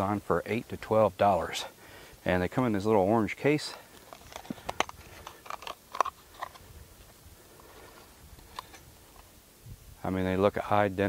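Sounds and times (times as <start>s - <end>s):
plastic cases clicking and tapping: 4.0s - 6.6s.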